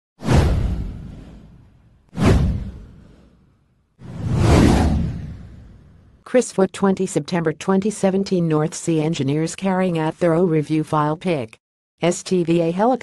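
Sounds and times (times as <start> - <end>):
whoosh with deep hit: 0.2 - 6.1.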